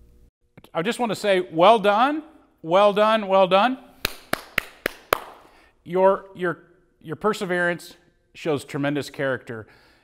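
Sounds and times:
man clapping hands: 4.0s - 5.5s.

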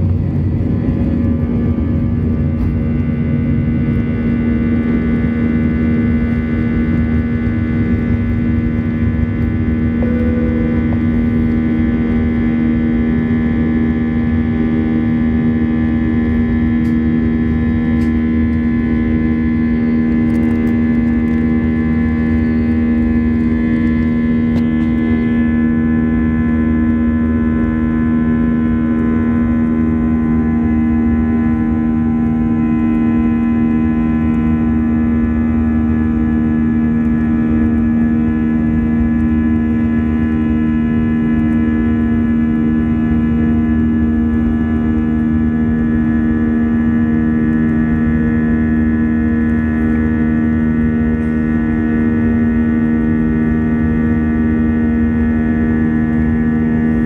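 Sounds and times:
jet engine cabin drone: 0.0s - 57.0s.

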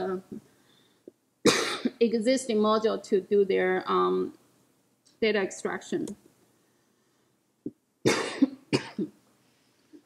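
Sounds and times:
woman coughing: 1.5s - 2.0s, 8.1s - 9.2s.

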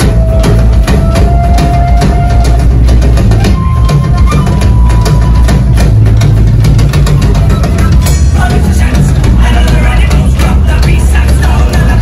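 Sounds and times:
drum hits: 0.0s - 12.0s
rock band playing loud: 0.0s - 12.0s.

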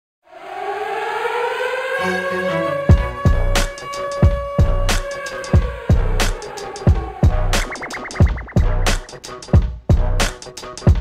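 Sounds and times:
rising siren-like electronic swell: 0.2s - 9.2s.

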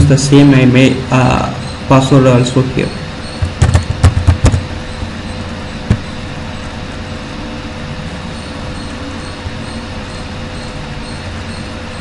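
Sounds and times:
faint constant tone: 0.0s - 12.0s.

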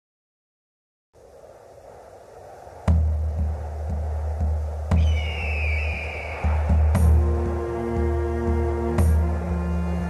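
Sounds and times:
soft hiss: 1.2s - 10.0s
deep bass beat: 2.9s - 9.2s.

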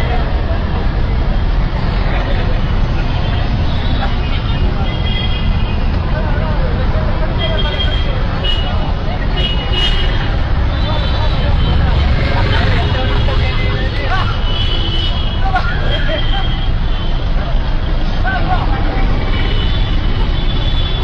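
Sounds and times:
people talking: 0.0s - 21.0s
traffic rumble: 0.0s - 21.0s.

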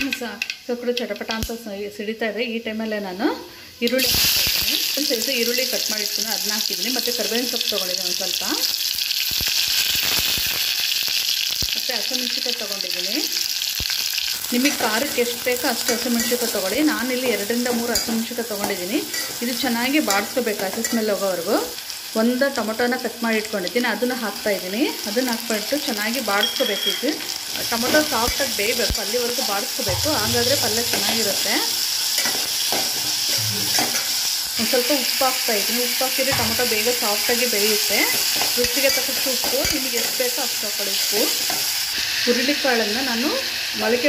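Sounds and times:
vegetables sizzling: 3.2s - 44.0s
metal ladle scraping a pot: 32.1s - 34.4s.

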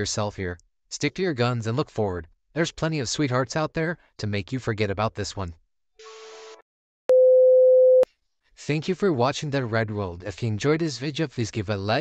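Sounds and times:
steady single-pitch test tone beep: 7.1s - 8.1s.

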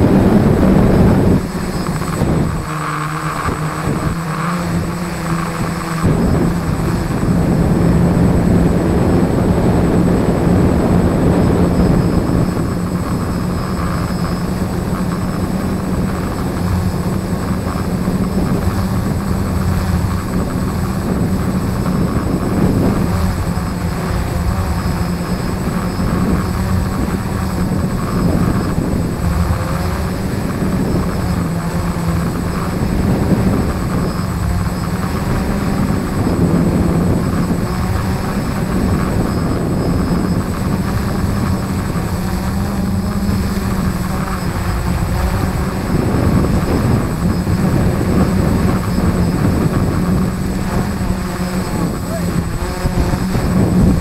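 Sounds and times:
quadcopter motors humming: 0.0s - 54.0s
wind noise on microphone: 0.0s - 54.0s.

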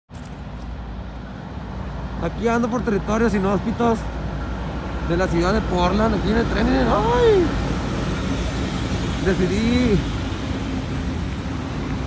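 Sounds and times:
distant road traffic: 0.1s - 12.0s.

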